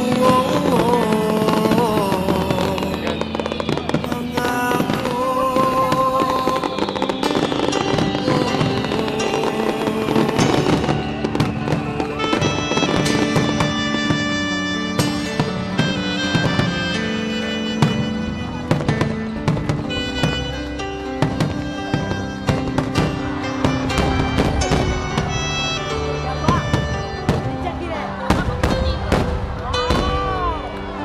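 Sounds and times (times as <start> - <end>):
fireworks bangs and crackles: 0.0 - 31.0
loud music with held notes: 0.0 - 31.0.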